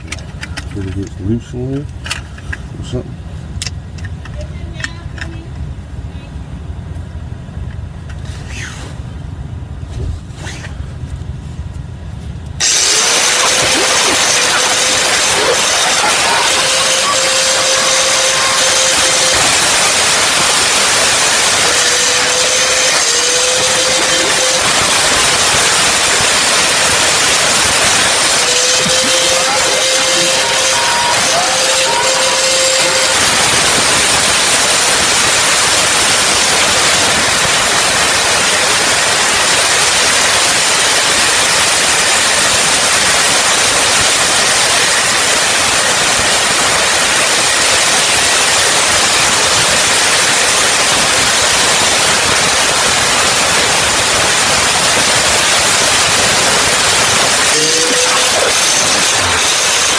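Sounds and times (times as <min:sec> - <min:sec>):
cut-off grinder cutting steel: 0:12.6 - 0:59.9.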